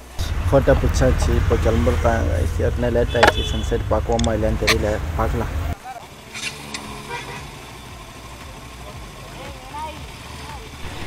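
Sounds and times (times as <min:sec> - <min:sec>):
motorcycle engine idling: 0:00.0 - 0:10.9.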